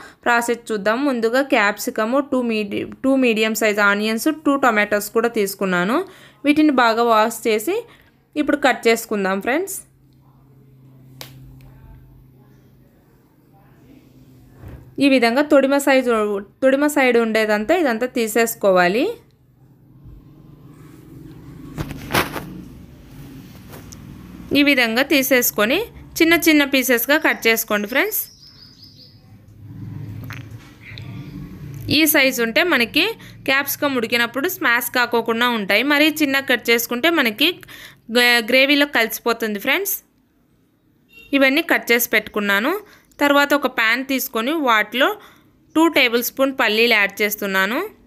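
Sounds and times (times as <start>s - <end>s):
small bird chirping: 27.0s - 29.4s.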